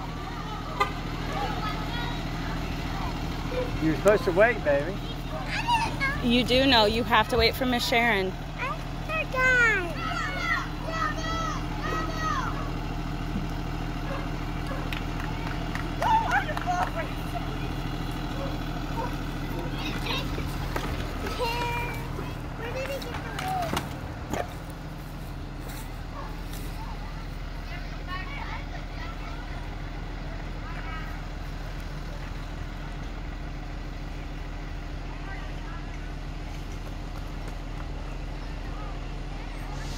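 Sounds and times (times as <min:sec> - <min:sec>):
bus engine idling: 0:00.0 - 0:39.9
child's voice: 0:05.0 - 0:06.2, 0:08.6 - 0:12.7, 0:19.5 - 0:20.6, 0:21.2 - 0:23.8, 0:27.7 - 0:29.8.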